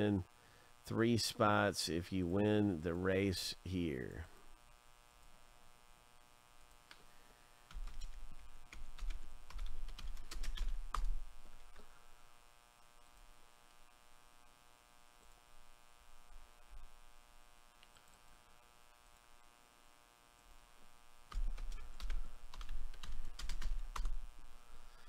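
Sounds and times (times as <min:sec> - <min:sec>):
low electrical hum: 0:00.0 - 0:25.0
keyboard typing: 0:07.7 - 0:11.8, 0:21.3 - 0:24.2.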